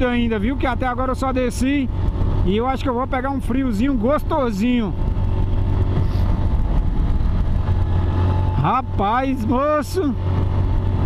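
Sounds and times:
motorcycle engine rumble: 0.0s - 11.0s
wind noise: 0.0s - 11.0s.

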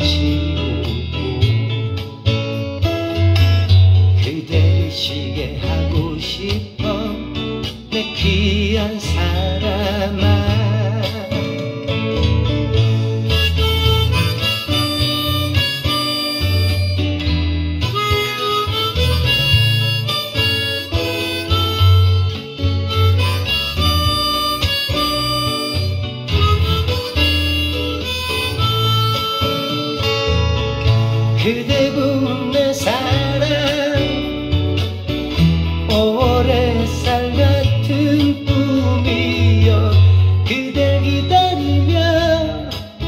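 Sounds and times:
acoustic guitar accompaniment: 0.0s - 43.0s
harmonica melody: 11.2s - 41.0s.

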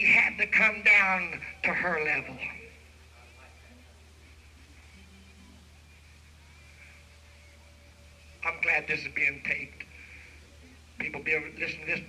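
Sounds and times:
tape hum and hiss: 0.0s - 12.0s.

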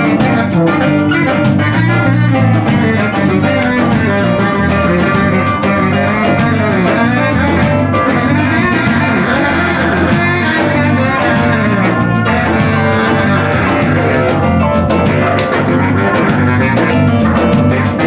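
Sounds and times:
drum kit steady beat: 0.0s - 18.0s
keyboard playing: 0.0s - 18.0s.

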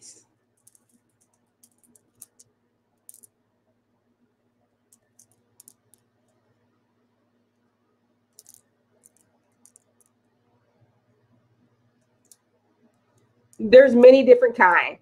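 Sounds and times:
faint low hum: 0.0s - 15.0s
beads and metal clasps clinking: 0.5s - 3.4s, 4.9s - 6.1s, 8.3s - 10.3s.

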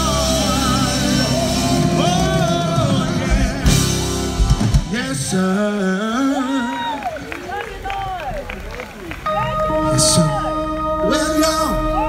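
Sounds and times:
outdoor crowd: 0.0s - 12.0s.

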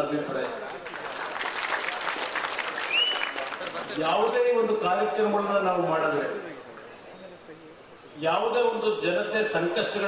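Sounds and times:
audience applauding: 0.6s - 4.0s
high whistle: 2.8s - 3.4s.

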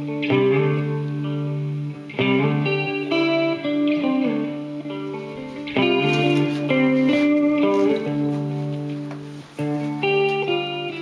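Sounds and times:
guitar chords and melody: 0.0s - 11.0s.

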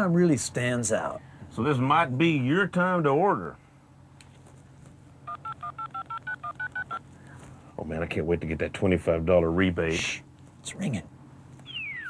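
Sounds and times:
telephone keypad beeps: 5.3s - 7.0s.

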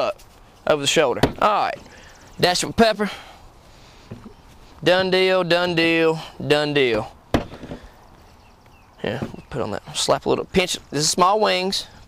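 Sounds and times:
faint handling sounds: 0.0s - 1.0s.

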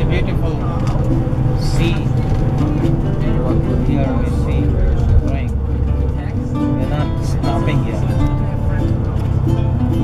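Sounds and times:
bus engine and road rumble: 0.0s - 10.0s
music: 0.0s - 10.0s
voices: 0.0s - 10.0s.

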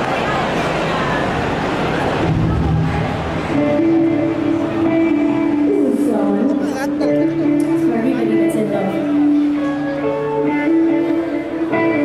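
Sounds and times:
live band music: 2.2s - 12.0s.

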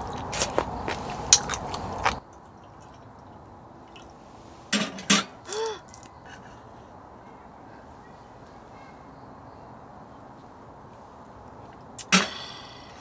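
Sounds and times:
close-up chewing and mouth noises: 0.0s - 4.2s, 5.5s - 6.8s
quiet outdoor ambience: 0.0s - 13.0s.

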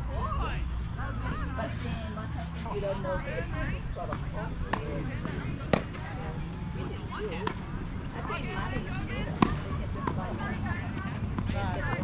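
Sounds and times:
players' voices: 0.0s - 12.0s
tennis balls struck by racquets: 4.0s - 12.0s.

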